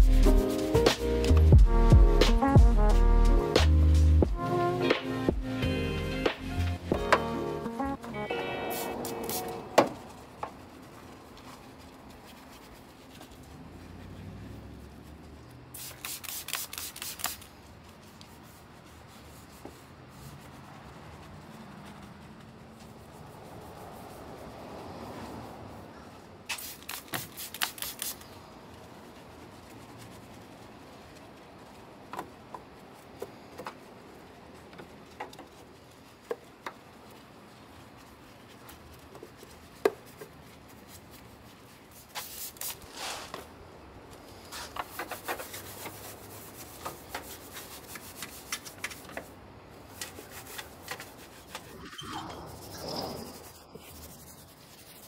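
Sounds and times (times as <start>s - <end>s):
background music: 0.0s - 9.8s
brush scrubbing plastic: 0.1s - 2.9s, 8.7s - 25.8s, 26.5s - 55.0s
short sharp brush strokes: 8.6s - 25.8s, 26.4s - 32.0s, 35.0s - 43.6s, 44.3s - 55.0s.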